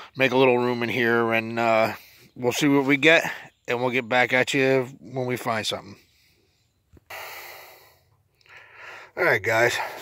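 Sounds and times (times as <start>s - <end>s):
heavy breath out: 7.1s - 9.2s.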